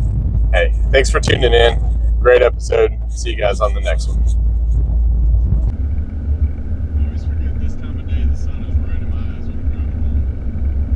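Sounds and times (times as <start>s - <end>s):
car engine rumble: 0.0s - 10.9s
road noise: 0.0s - 10.9s.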